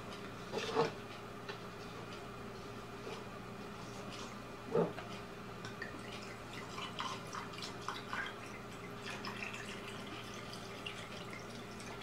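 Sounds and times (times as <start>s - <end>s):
wine pouring into glass: 5.8s - 12.0s.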